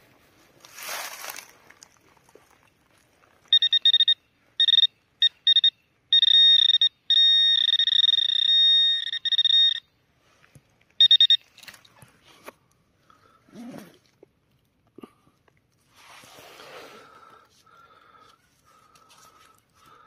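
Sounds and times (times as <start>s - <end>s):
metal detector probe beeping: 3.5s - 10.0s, 11.0s - 11.9s.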